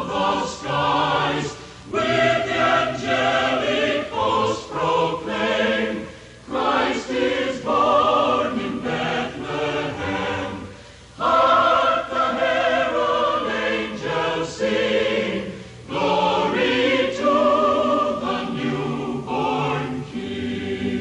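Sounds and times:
mixed choir singing carol: 0.0s - 21.0s.

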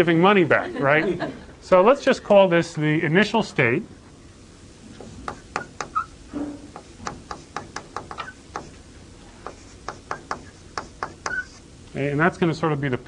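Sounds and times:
chalk tapping and scratching: 5.0s - 11.7s.

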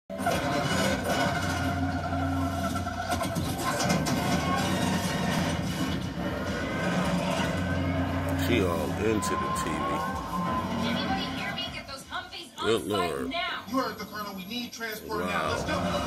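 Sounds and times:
action movie music from television: 0.1s - 12.6s, 13.3s - 16.0s.

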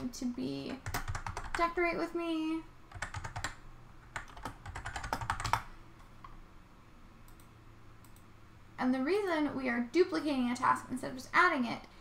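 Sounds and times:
faint low hum: 0.0s - 12.0s
computer keyboard typing: 0.7s - 1.8s, 2.9s - 6.4s, 7.3s - 8.3s.

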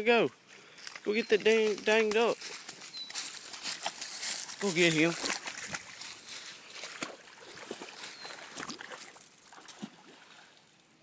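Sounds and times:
footsteps crunching dry leaves: 0.6s - 9.3s.

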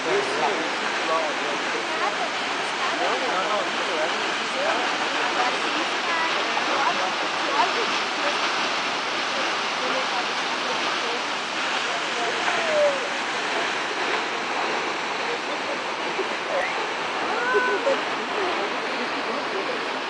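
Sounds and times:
indistinct voices murmuring: 0.0s - 20.0s
waterfall rushing: 0.0s - 20.0s.

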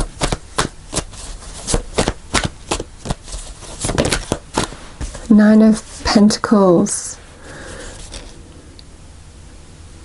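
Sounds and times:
cards being shuffled: 0.0s - 6.1s, 7.7s - 8.4s.

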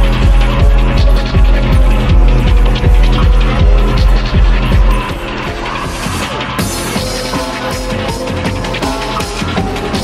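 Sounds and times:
hard techno music: 0.0s - 10.0s
heavy kick drum: 0.0s - 10.0s.

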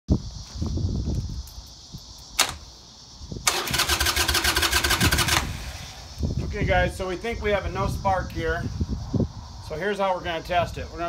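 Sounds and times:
sharp click: 2.2s - 2.7s
motorcycle starter cranking: 3.4s - 6.0s.

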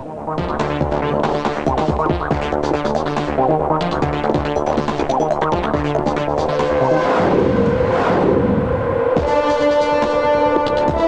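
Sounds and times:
electronic music: 0.0s - 11.0s
rumbling swell: 6.1s - 11.0s
brass-led orchestral music: 6.4s - 11.0s.

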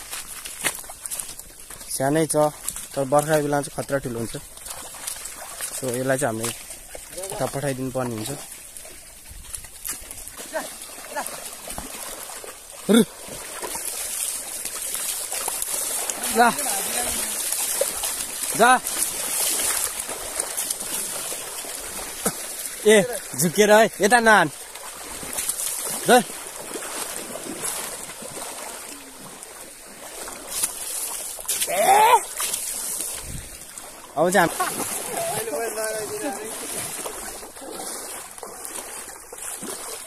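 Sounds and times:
water splashing: 0.0s - 40.0s.

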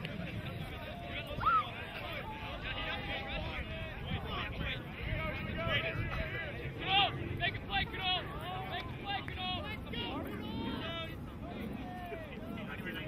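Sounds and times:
wind rumble on microphone: 0.0s - 13.0s
people shouting short calls: 1.0s - 3.6s.

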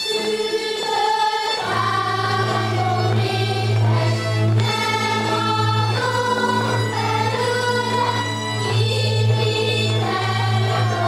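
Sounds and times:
group singing folk tune: 0.0s - 11.0s
steady low drone: 1.6s - 11.0s.

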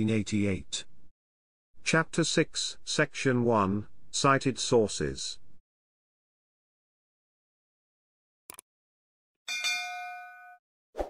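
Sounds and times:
notification bell ding: 9.5s - 10.6s.

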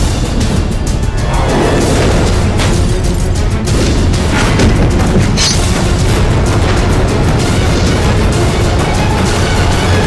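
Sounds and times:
dense music with booming hits: 0.0s - 10.0s.

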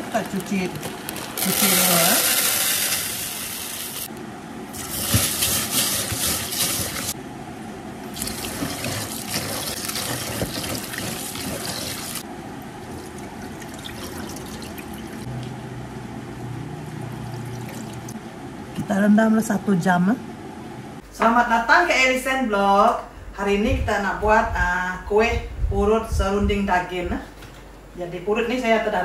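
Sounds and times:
water pouring into plastic basin: 8.1s - 12.2s, 12.9s - 15.2s, 17.3s - 18.1s
hands swishing rice in water: 8.2s - 12.2s.

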